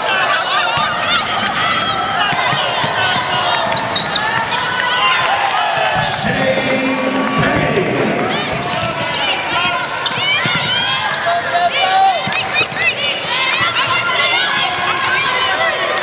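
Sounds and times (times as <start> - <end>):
players calling out: 0.0 - 16.0
sneakers squeaking: 0.5 - 4.8, 8.4 - 14.7
basketball dribbling: 8.2 - 11.4.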